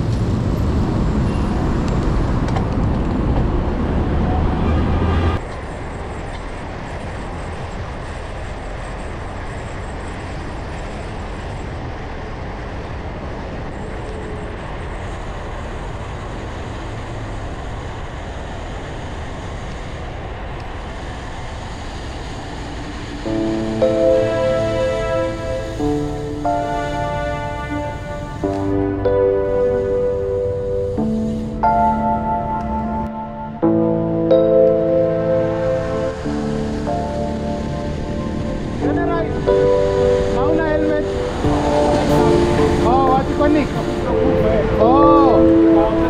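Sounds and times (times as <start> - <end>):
wind noise: 0.0 - 34.3, 35.3 - 46.0
traffic noise: 0.0 - 46.0
background music: 23.3 - 46.0.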